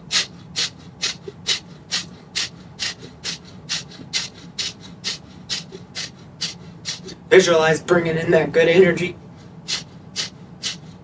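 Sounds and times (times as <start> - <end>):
man huffing through nose: 0.0 - 7.2, 9.7 - 11.0.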